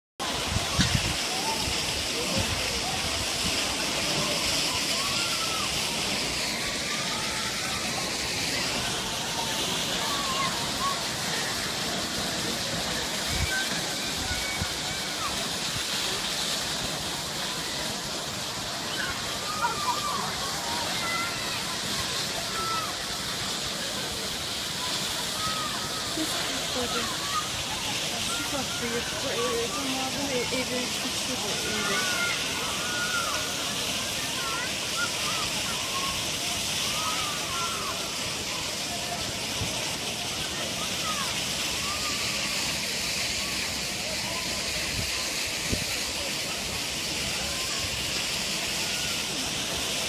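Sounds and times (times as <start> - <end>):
water jet rushing hiss: 0.2 - 50.0.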